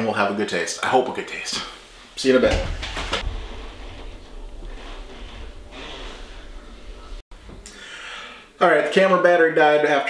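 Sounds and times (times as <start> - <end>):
low hum: 1.8 - 8.6
short breath: 7.6 - 8.6.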